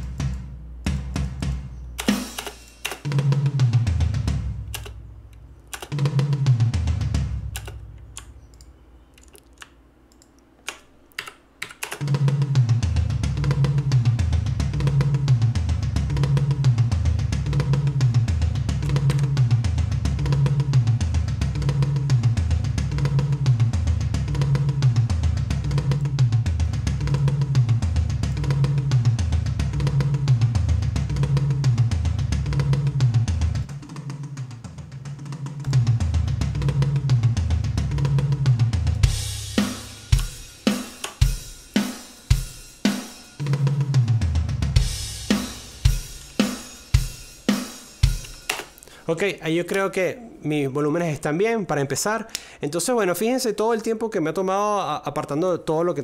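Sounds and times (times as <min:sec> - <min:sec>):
programmed rock drum pattern: 0:00.0 - 0:05.1, 0:05.7 - 0:08.4, 0:11.4 - 0:49.0.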